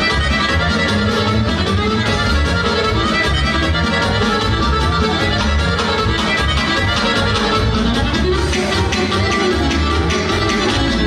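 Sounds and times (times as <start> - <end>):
accordion folk dance music: 0.0 - 11.0.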